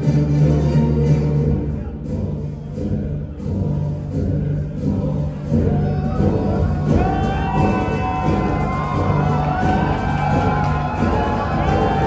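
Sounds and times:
low rumbling music over loudspeakers: 0.0s - 12.0s.

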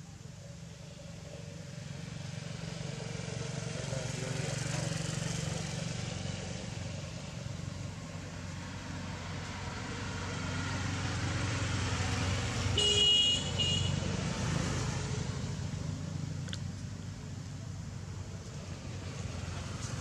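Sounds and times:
traffic rumble: 0.0s - 20.0s.

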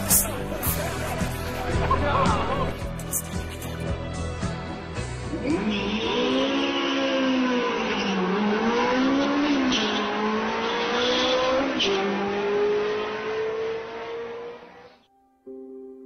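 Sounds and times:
car engine accelerating hard: 5.3s - 15.0s.

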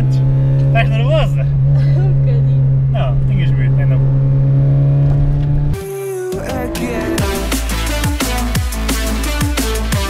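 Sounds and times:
car engine at steady revs: 0.0s - 5.8s.

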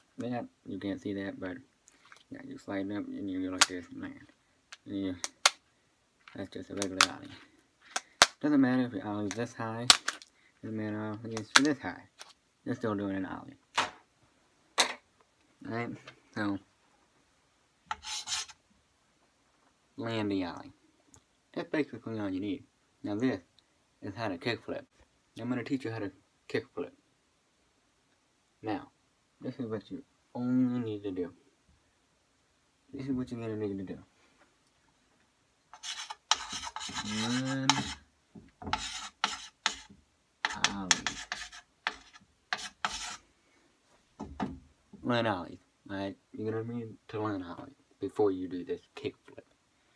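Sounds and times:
chalk scratching on chalkboard: 17.9s - 18.6s, 35.7s - 38.0s, 38.7s - 43.2s.

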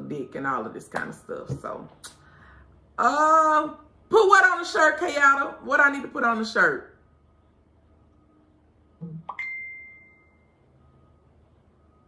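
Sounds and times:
high ringing ding: 9.0s - 11.0s.

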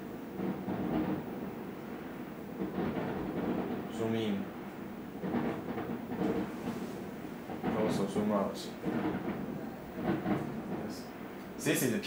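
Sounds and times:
low room noise: 0.0s - 12.0s
man speaking softly: 3.9s - 4.5s, 7.7s - 8.8s, 10.7s - 12.0s.

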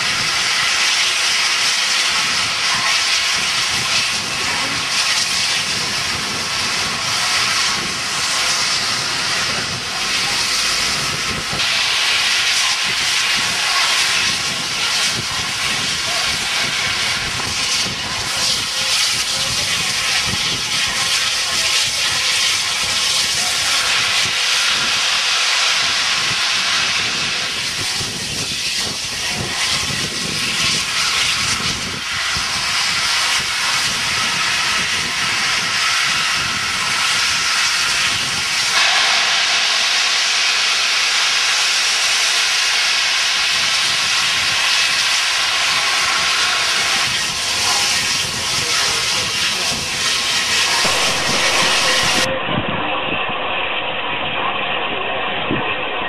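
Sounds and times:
steam locomotive releasing steam: 0.0s - 52.5s.

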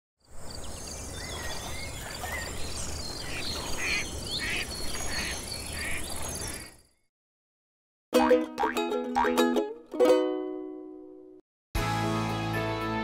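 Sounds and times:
bird-like chirps: 0.3s - 7.1s.

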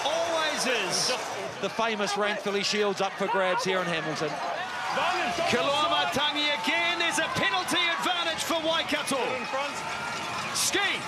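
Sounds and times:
man commentating excitedly: 0.0s - 9.8s.

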